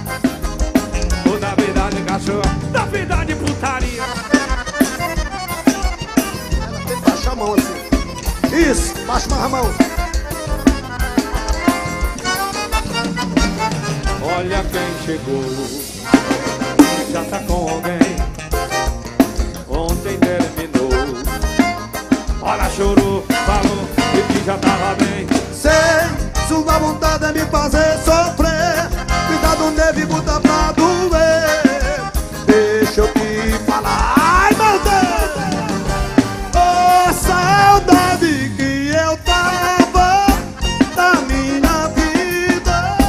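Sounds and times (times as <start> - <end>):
accordion melody: 0.0 - 43.0
drum kit beat: 0.0 - 43.0.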